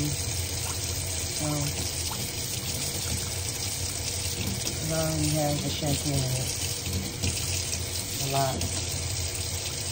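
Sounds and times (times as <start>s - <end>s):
water running into a sink: 0.0s - 9.9s.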